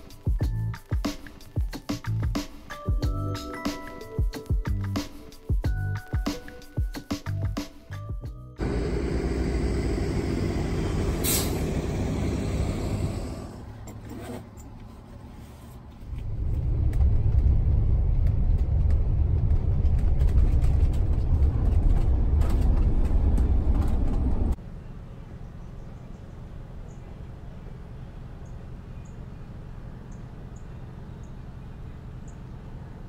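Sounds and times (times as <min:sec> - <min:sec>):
music: 0:00.0 - 0:08.6
heavy low rumble: 0:08.6 - 0:13.7, 0:16.0 - 0:24.6
tyre and engine road noise: 0:08.6 - 0:33.0.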